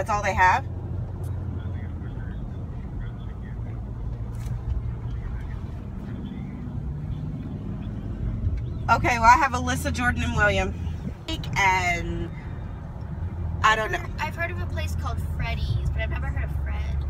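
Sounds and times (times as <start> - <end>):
car engine and road rumble: 0.0 - 17.0
faint voices: 1.3 - 9.7.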